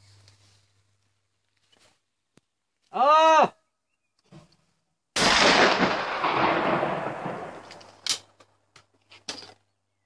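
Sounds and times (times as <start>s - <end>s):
shotgun shot: 5.2s - 7.7s
rolling echo: 5.2s - 7.8s.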